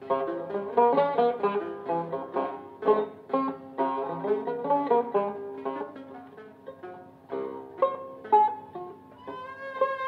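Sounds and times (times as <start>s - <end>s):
long-necked lute plucked notes: 0.0s - 10.0s.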